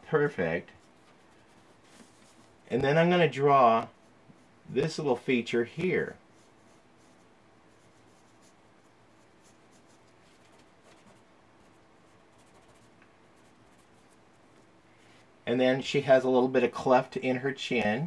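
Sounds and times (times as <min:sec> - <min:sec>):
pencil scratching on paper: 0:09.4 - 0:14.2.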